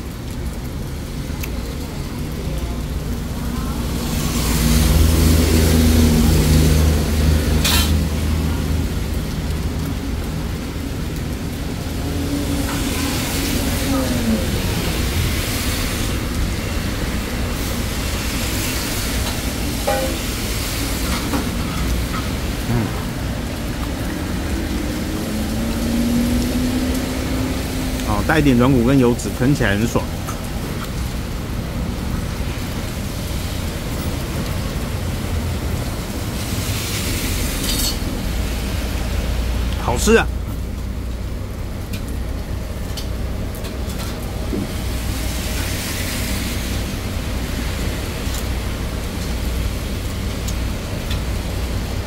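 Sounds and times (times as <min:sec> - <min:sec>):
passing vehicle engines: 0:01.4 - 0:52.0.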